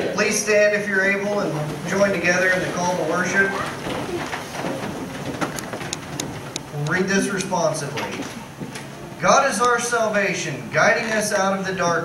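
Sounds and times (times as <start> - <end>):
faint room noise: 0.0 - 12.0
man speaking: 0.1 - 3.7, 6.7 - 8.3, 9.2 - 12.0.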